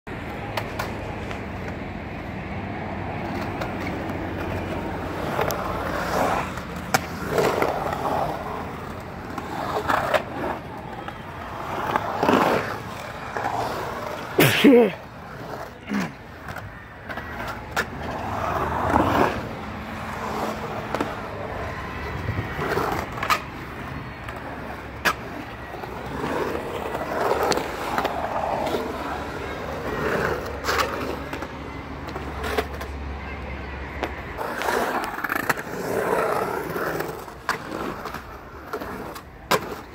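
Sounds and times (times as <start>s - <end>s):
skateboard clicks: 0.1s - 2.4s, 3.2s - 14.4s, 15.0s - 39.9s
skateboard wheels rolling on concrete: 0.1s - 39.9s.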